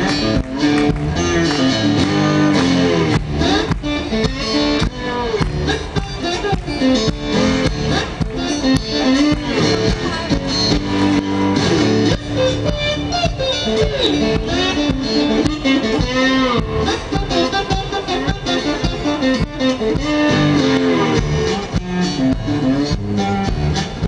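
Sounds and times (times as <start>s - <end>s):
lap slide guitar: 0.0s - 24.0s
steady drums: 0.0s - 24.0s.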